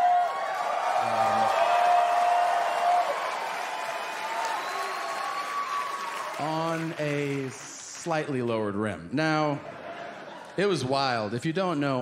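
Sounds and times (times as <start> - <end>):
shouts in the crowd: 0.0 - 6.4
audience applauding and cheering: 0.0 - 8.5.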